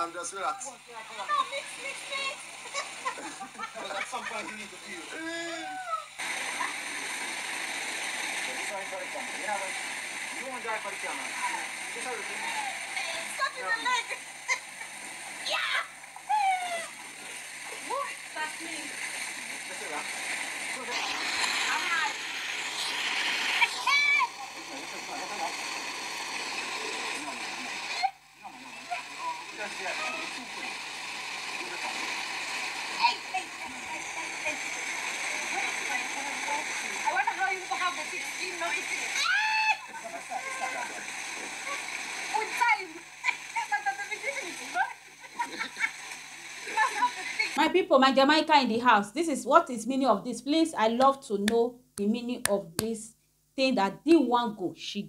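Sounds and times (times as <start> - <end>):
water splashing and running: 1.0 - 28.0, 28.7 - 47.6
woman crying out: 39.2 - 39.9.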